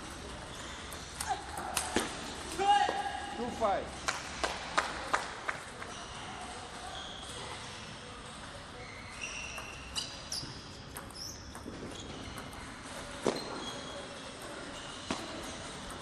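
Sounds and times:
shoes squeaking on floor: 0:00.0 - 0:03.9, 0:05.8 - 0:16.0
table tennis ball ticks: 0:10.9 - 0:12.6.

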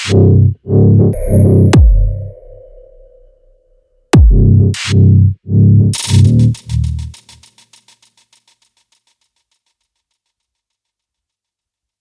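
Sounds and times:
heavy synth bass: 0:00.0 - 0:03.5, 0:04.2 - 0:04.9
steady synth tone: 0:01.2 - 0:03.8.

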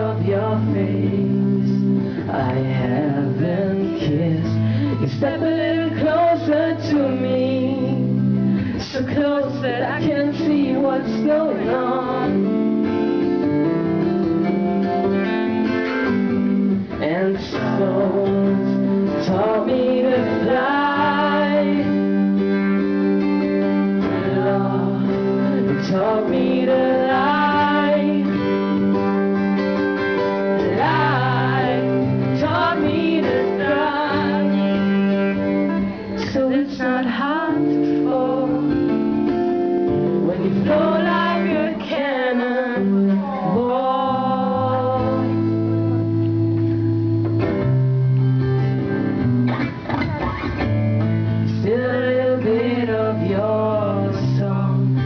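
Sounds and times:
man singing: 0:00.0 - 0:13.0, 0:16.8 - 0:22.6, 0:23.7 - 0:28.8, 0:30.4 - 0:39.2, 0:39.9 - 0:45.9, 0:51.4 - 0:55.0
acoustic guitar strumming: 0:00.0 - 0:55.0.

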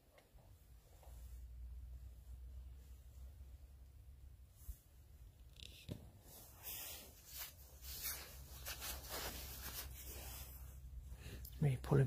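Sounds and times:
rustling and handling noises: 0:00.0 - 0:11.4
low steady rumble: 0:00.4 - 0:05.5, 0:06.2 - 0:12.0.

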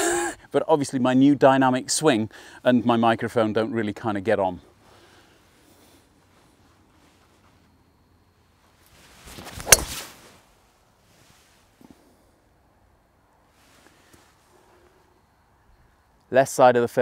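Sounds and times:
golf club swish: 0:08.9 - 0:10.5
golf club striking ball: 0:09.6 - 0:10.0.

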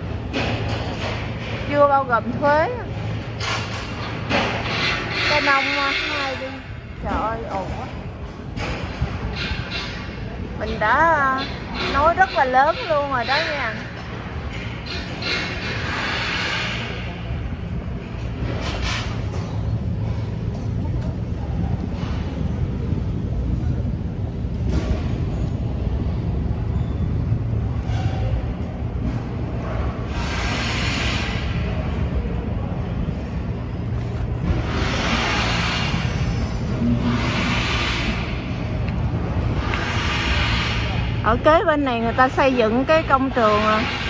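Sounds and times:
construction site rumble: 0:00.0 - 0:44.0.

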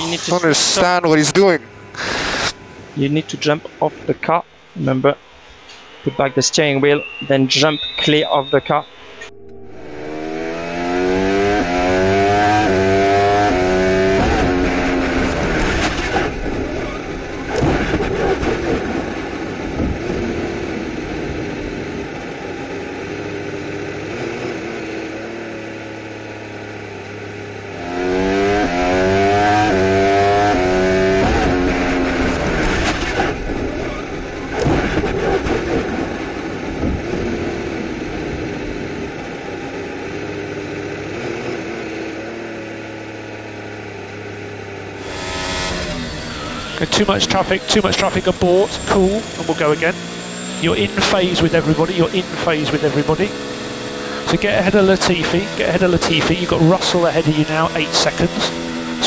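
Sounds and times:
engine revving: 0:00.0 - 0:03.6, 0:07.0 - 0:59.0
race car engine: 0:00.0 - 0:59.0.

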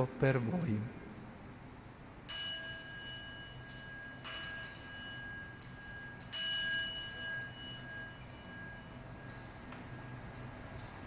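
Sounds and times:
small bells ringing: 0:02.3 - 0:11.0.

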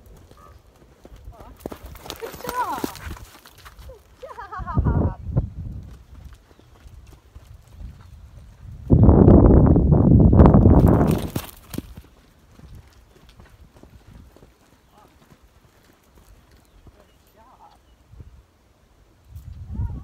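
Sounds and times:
horse hoofbeats cantering: 0:00.0 - 0:04.5, 0:05.8 - 0:08.8, 0:10.6 - 0:17.3.

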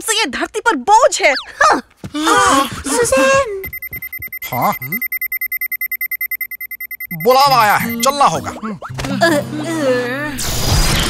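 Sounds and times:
rapid electronic alert beeping: 0:03.2 - 0:08.4.

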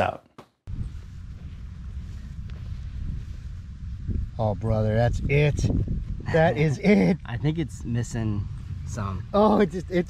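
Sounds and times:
wind rumble on microphone: 0:00.7 - 0:10.0.

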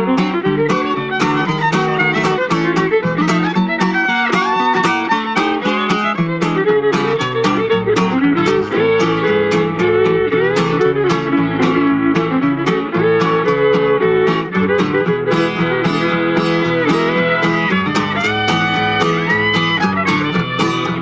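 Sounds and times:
acoustic guitar strumming: 0:00.0 - 0:21.0
fiddle melody: 0:00.0 - 0:21.0.

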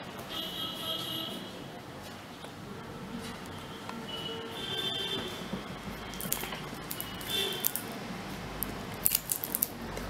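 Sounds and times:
plastic bottle crinkling: 0:06.0 - 0:07.9, 0:08.6 - 0:09.8.

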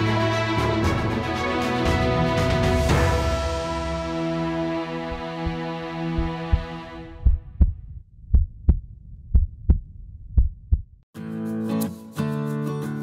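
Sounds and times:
sustained music chord: 0:00.0 - 0:07.2
guitar music: 0:03.8 - 0:06.9, 0:11.2 - 0:13.0
heartbeat thumps: 0:05.1 - 0:11.0.

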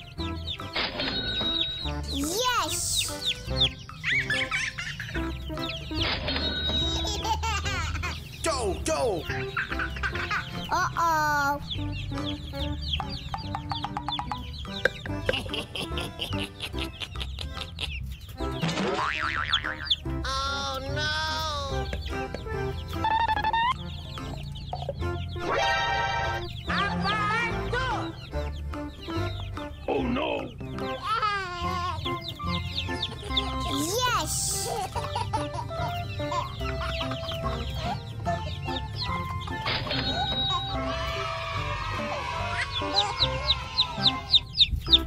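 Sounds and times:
baby chicks peeping: 0:00.0 - 0:45.0
cheerful music with steady beat: 0:00.0 - 0:45.0
cartoon boing sound effect: 0:18.7 - 0:19.9.

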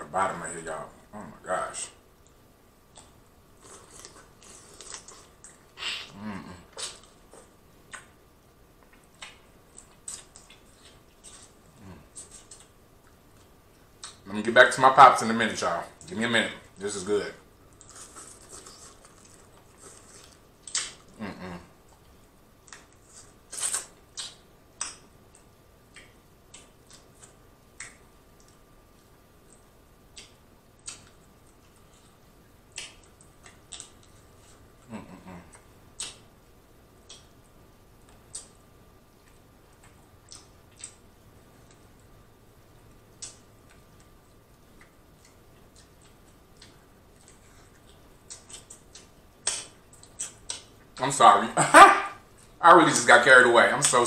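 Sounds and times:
wet mouth sounds eating shellfish: 0:02.9 - 0:08.1, 0:17.7 - 0:21.6, 0:32.7 - 0:36.3, 0:44.8 - 0:51.0
lip smacks and sucking clicks: 0:17.7 - 0:21.2, 0:22.0 - 0:28.6, 0:29.4 - 0:34.2, 0:35.5 - 0:36.3, 0:37.0 - 0:38.6, 0:39.2 - 0:42.1, 0:43.0 - 0:51.1.

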